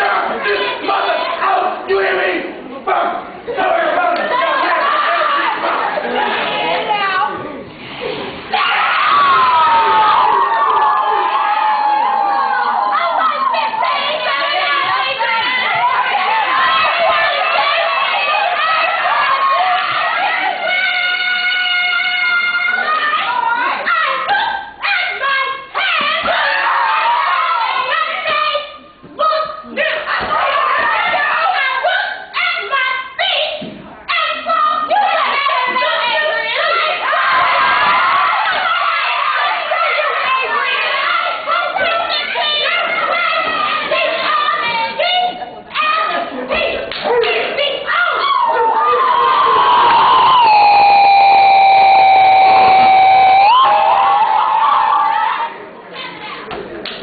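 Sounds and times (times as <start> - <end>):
crowd shouting bark-like calls: 0.0 - 6.9, 8.5 - 28.4, 34.2 - 45.0, 47.1 - 56.2
high-pitched vocal call: 49.4 - 54.0.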